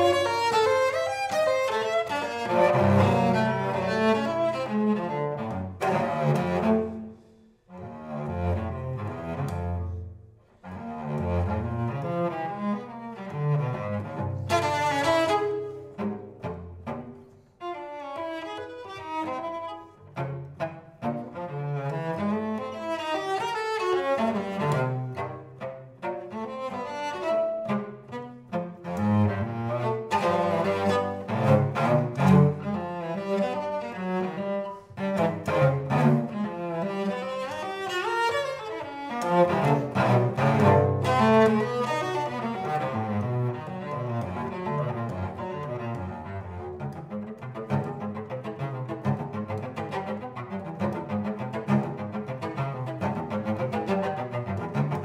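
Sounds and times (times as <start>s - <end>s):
cello bowed notes: 0.0s - 55.0s.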